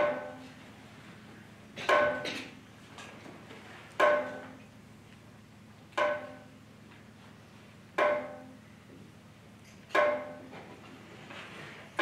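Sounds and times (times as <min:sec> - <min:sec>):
struck metal percussion ringing: 0:00.0 - 0:00.5, 0:01.8 - 0:02.5, 0:04.0 - 0:04.6, 0:06.0 - 0:06.6, 0:08.0 - 0:08.7, 0:09.9 - 0:10.6.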